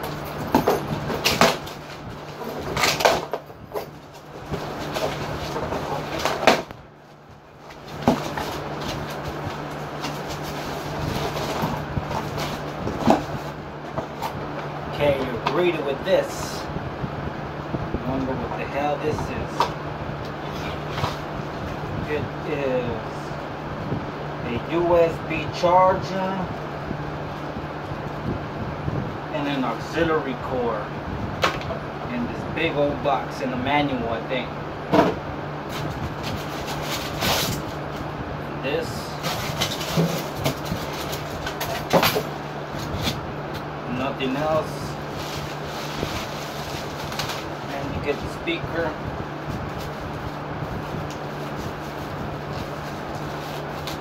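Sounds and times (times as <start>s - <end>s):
low room hum: 0.0s - 54.0s
plastic wrapping rustling: 1.0s - 14.4s, 35.7s - 38.1s, 44.6s - 48.3s, 49.4s - 54.0s.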